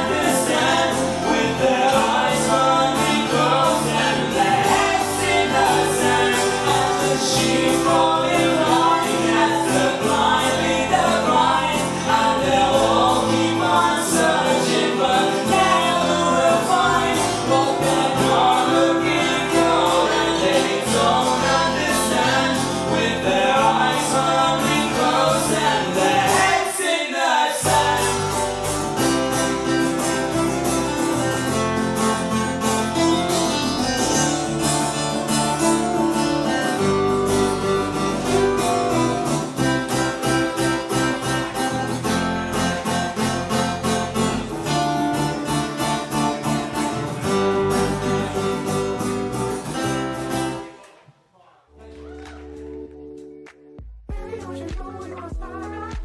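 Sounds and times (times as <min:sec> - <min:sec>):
electric bass: 0:00.0 - 0:26.6, 0:27.6 - 0:50.6
person singing: 0:00.0 - 0:28.6, 0:54.1 - 0:56.0
acoustic guitars strumming: 0:00.0 - 0:50.9.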